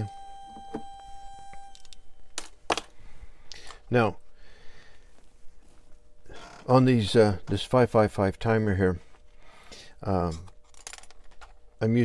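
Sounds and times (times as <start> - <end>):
high-pitched steady beep: 0.0 - 2.1.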